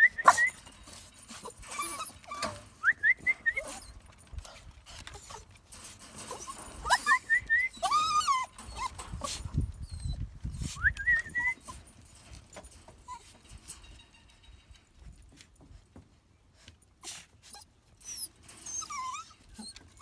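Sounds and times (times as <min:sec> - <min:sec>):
dogs whining: 0:00.0 - 0:05.6, 0:06.2 - 0:12.1, 0:17.0 - 0:20.0.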